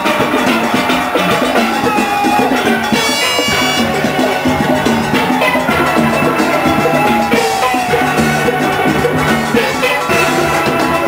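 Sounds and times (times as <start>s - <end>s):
drums steady beat: 0.0s - 11.0s
steel pans playing tune: 0.0s - 11.0s.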